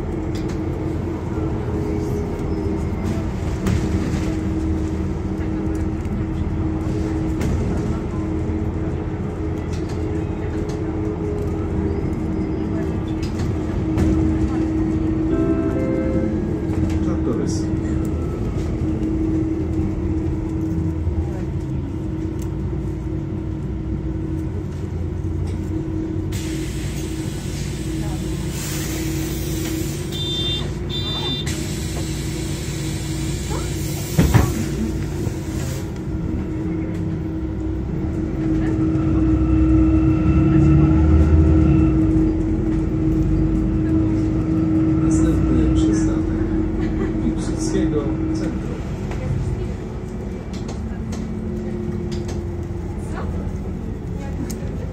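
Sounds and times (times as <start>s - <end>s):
bus engine humming: 0.0s - 54.9s.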